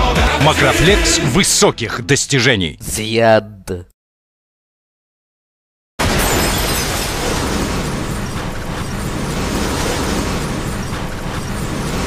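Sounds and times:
harsh rushing noise: 6.0 - 12.0.

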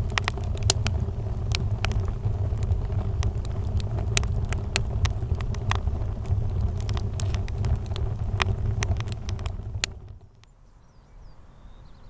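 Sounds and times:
steady low rumble: 0.0 - 10.5
wood fire crackling and popping: 0.0 - 10.5.

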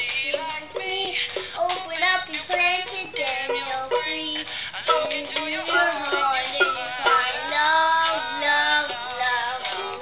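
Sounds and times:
child singing: 0.0 - 10.0
toy ukulele strumming: 0.0 - 10.0.

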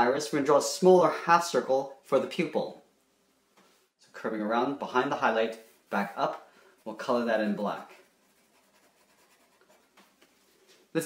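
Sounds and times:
marker scratching on paper: 6.8 - 10.6.

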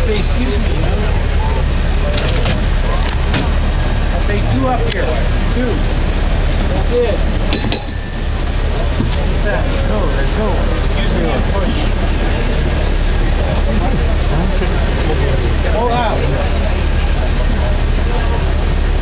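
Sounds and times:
cable car rumbling: 0.0 - 19.0
sharp metallic clanks: 7.5 - 9.6
high metallic ring: 7.5 - 9.8.

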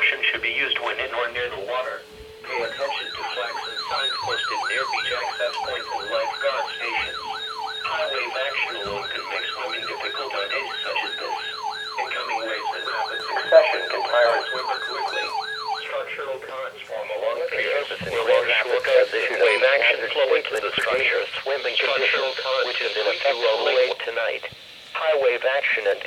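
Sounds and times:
warbling high tone: 0.0 - 20.3
electronic siren wailing: 0.0 - 23.9
steady hum-like tone: 0.0 - 26.0.

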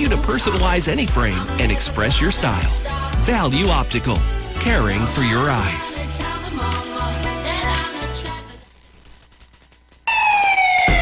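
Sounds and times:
police siren wailing: 10.1 - 11.0.

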